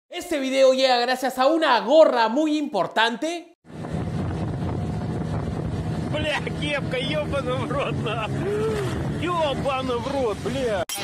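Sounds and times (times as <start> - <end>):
outboard motor running: 3.7 - 10.5
wind on microphone: 3.7 - 10.8
men calling out: 6.4 - 10.0.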